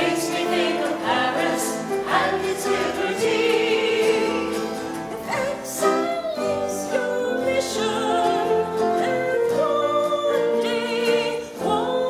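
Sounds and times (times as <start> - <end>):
group singing in harmony: 0.0 - 12.0.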